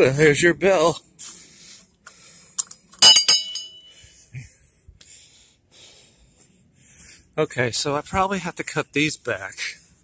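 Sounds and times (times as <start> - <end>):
small metal bell clanging: 3.0 - 4.0.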